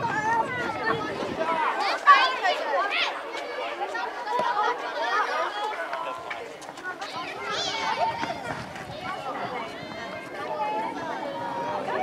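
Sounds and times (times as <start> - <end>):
children shouting: 0.0 - 12.0.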